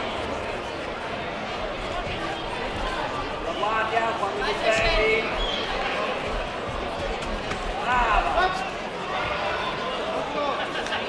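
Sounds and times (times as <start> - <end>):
indistinct voices and chatter: 0.0 - 11.0.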